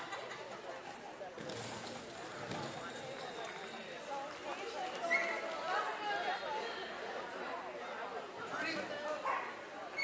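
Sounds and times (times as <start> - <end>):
indistinct voices in echoing arena: 0.0 - 10.0.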